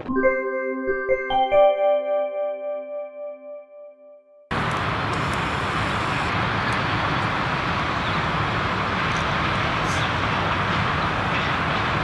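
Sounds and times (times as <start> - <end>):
distant freight train approaching: 4.5 - 12.0.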